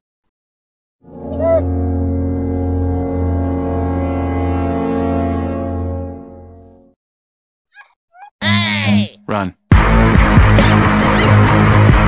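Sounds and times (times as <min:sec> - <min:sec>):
low buzzy horn-like drone: 0:01.0 - 0:07.0.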